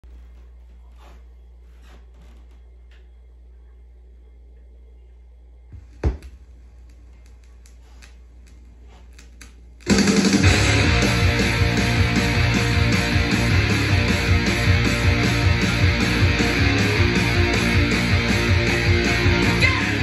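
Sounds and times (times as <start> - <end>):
low hum: 0.0 - 20.0
vinyl surface crackle: 6.8 - 10.4
rock music with electric guitar: 9.9 - 20.0.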